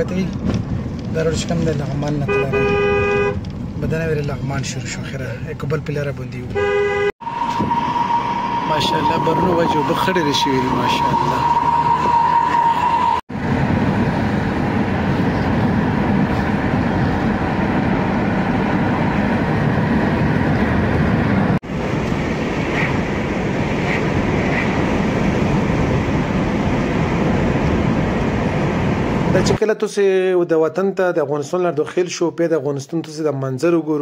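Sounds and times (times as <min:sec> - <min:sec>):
car driving on paved road: 0:00.0 - 0:29.6.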